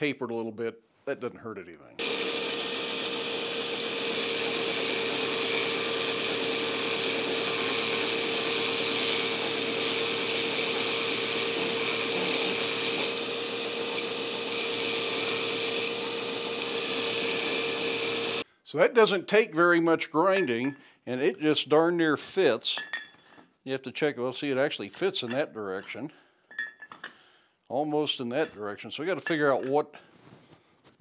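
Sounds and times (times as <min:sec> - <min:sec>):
belt grinder humming: 0:02.0 - 0:18.4
steel grinding on belt: 0:02.0 - 0:18.4.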